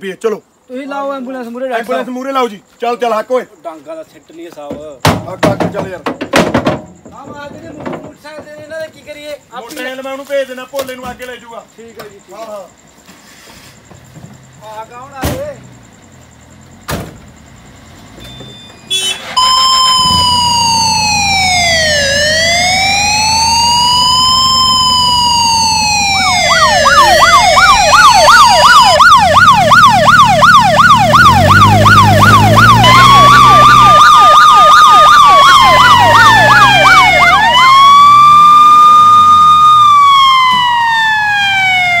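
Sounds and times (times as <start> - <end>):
emergency vehicle siren: 18.8 - 42.0.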